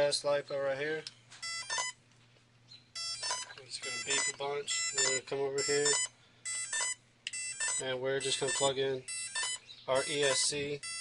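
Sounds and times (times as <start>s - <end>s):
short electronic beeps: 1.4s - 2.0s, 3.0s - 11.0s.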